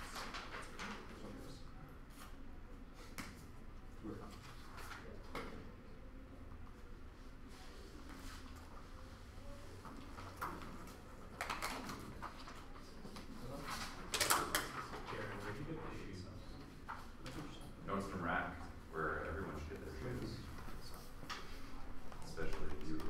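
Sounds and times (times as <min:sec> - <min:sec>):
paper rustling: 0:04.3 - 0:05.4.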